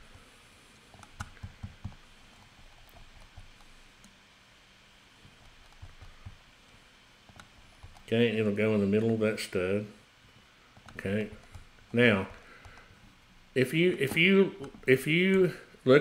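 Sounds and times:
computer mouse clicks: 0.7 - 4.2, 5.2 - 8.1, 10.7 - 13.0, 14.0 - 14.9.

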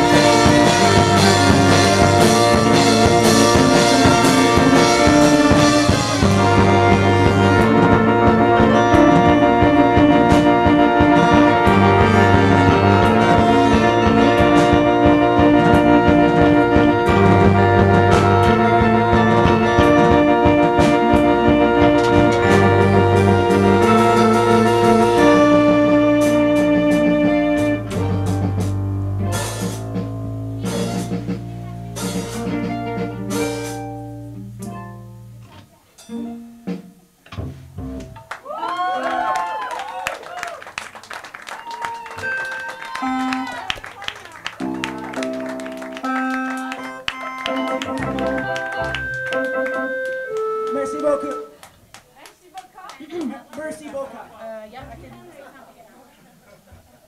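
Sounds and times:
live rock band playing: 0.0 - 51.7
scattered claps: 38.0 - 54.1
crowd voices: 41.6 - 57.0.

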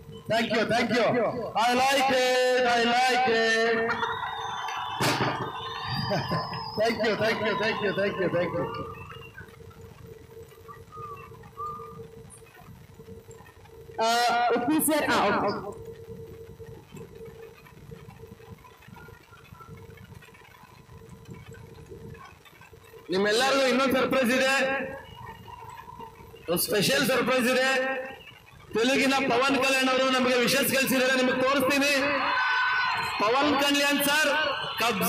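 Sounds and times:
distant crowd noise: 0.0 - 12.6, 17.0 - 35.0
faint hum: 0.0 - 35.0
confetti cannon burst: 4.9 - 5.6.

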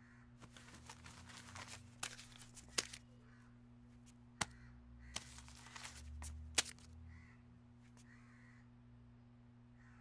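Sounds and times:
crows cawing: 0.0 - 0.6, 3.2 - 3.6, 4.4 - 6.0, 7.0 - 8.8, 9.8 - 10.0
steady low hum: 0.0 - 10.0.

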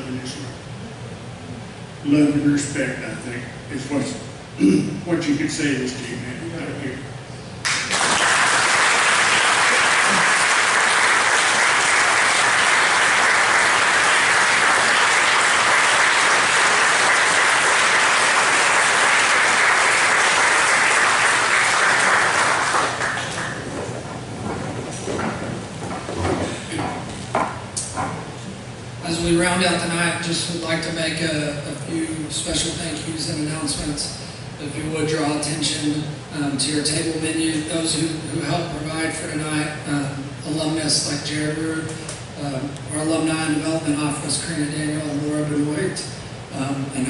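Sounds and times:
audience applauding: 7.6 - 25.1.

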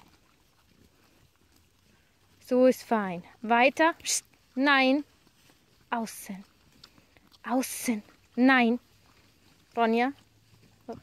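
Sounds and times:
pigs rooting in soil: 0.0 - 11.0.

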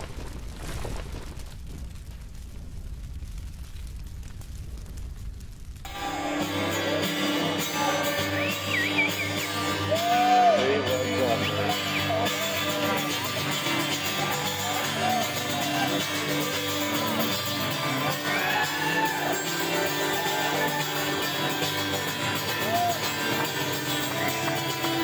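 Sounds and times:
crash with low rumble: 0.0 - 5.9
music with held tones: 5.9 - 25.0.

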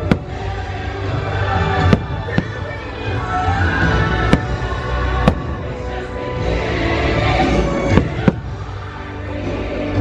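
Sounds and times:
fireworks bursting: 0.0 - 6.5, 7.3 - 8.8
fireworks show music: 0.0 - 10.0.

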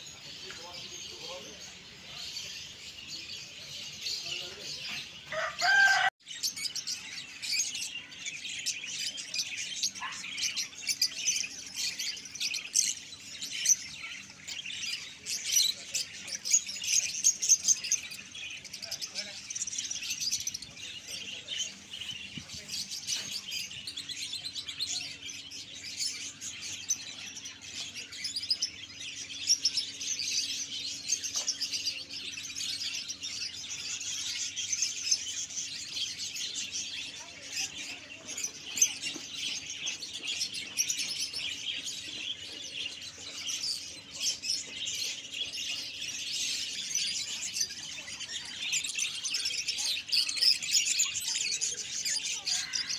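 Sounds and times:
birds chirping: 0.0 - 52.9.

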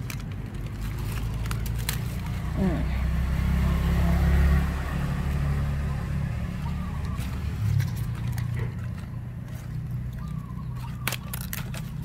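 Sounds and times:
vehicle engine passing by: 0.7 - 11.1.

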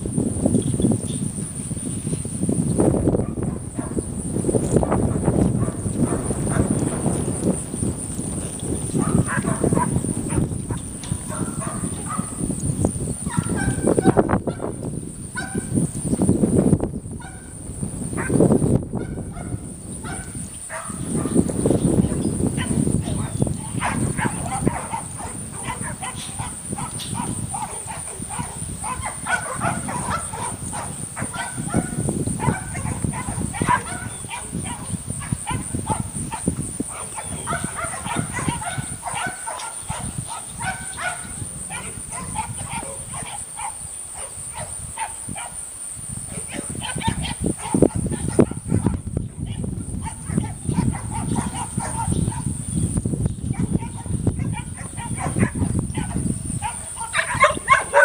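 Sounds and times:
flock of birds calling: 19.1 - 44.1, 56.2 - 58.0.

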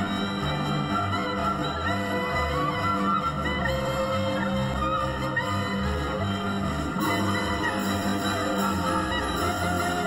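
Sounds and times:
orchestral music: 0.0 - 10.0.

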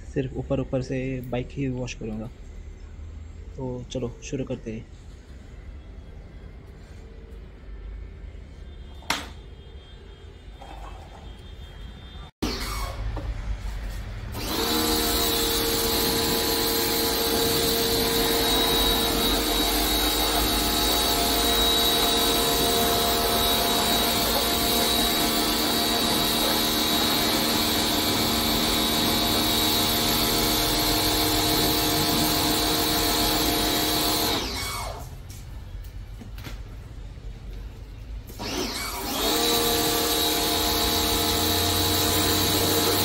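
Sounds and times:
pressure washer motor whine: 14.3 - 35.1, 38.4 - 43.0.

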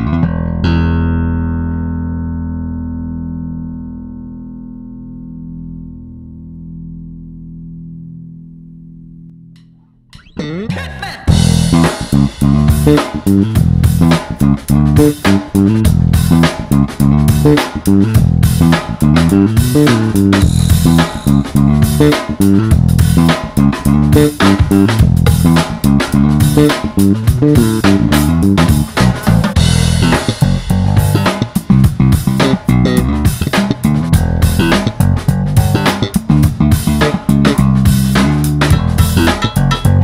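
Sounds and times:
electric bass notes ringing: 0.0 - 40.0.

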